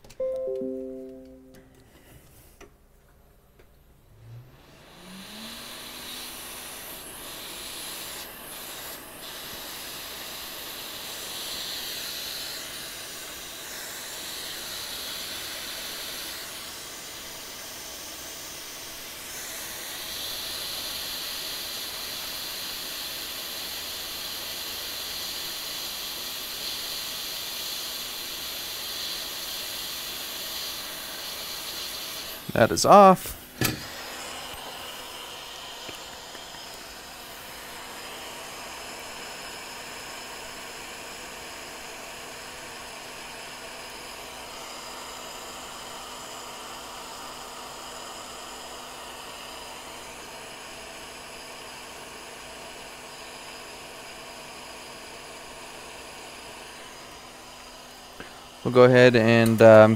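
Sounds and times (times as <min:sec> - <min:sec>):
hot air station blowing hiss: 0:04.2 - 0:59.9.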